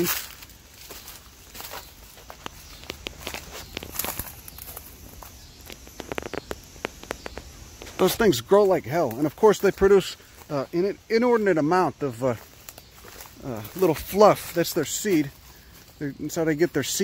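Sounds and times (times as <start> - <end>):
footsteps crunching dry leaves: 0.0 - 17.0.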